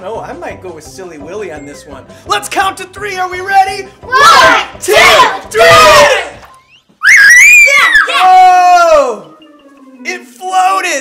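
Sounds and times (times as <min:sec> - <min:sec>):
children screaming: 0:07.0 - 0:09.2.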